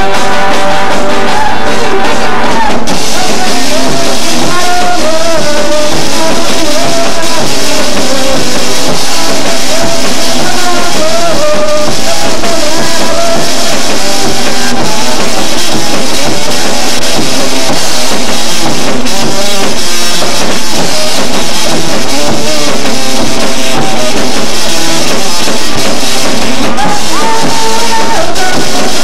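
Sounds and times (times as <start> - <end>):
drum kit with cymbals: 0.0 - 29.0
electric guitar: 0.0 - 29.0.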